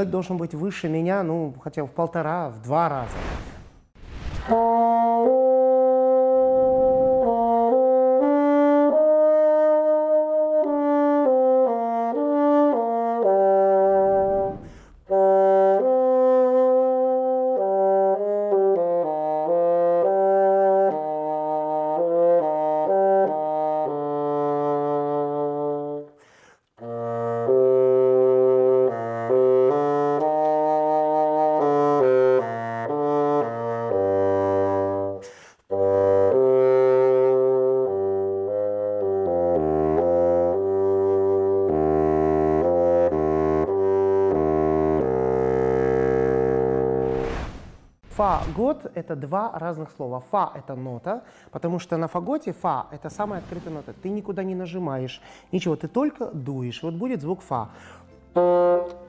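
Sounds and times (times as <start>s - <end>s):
solo bassoon melody: 4.4s - 47.1s, 57.5s - 59.0s.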